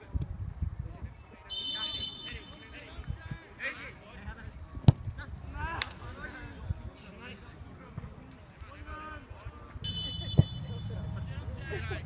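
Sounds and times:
football kicked with a smack: 4.8 - 5.1.

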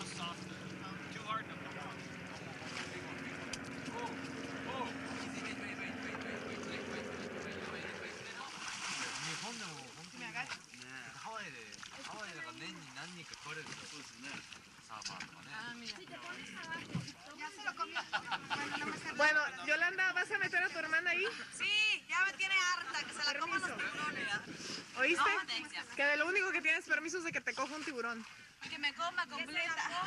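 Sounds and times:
boat engine idling: 0.0 - 8.8
water noise: 0.0 - 21.0, 21.6 - 30.0
wind: 0.0 - 30.0
shark splashing at surface: 8.3 - 10.2.

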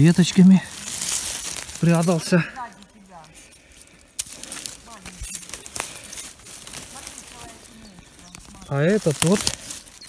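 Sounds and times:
footsteps in dry leaves: 0.0 - 10.0
twig snapping: 0.7 - 10.0.

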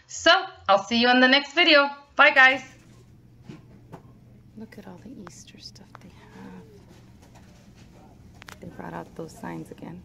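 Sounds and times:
woman speaking: 0.0 - 2.8, 4.5 - 6.9, 8.5 - 10.0
steady low hum: 0.0 - 10.0.

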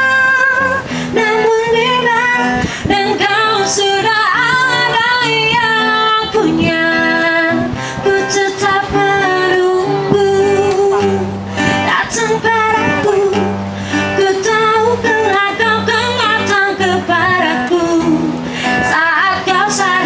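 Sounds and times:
acoustic guitar: 0.0 - 20.0
woman singing with vibrato: 0.0 - 20.0.

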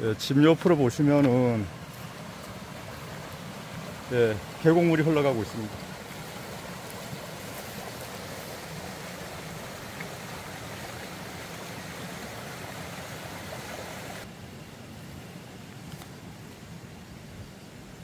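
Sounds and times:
stream water rushing: 0.0 - 14.5.

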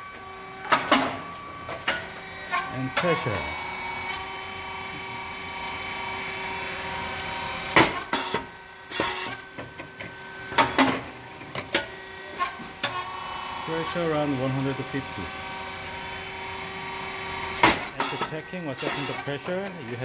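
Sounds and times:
machine motor hum: 0.0 - 20.0.

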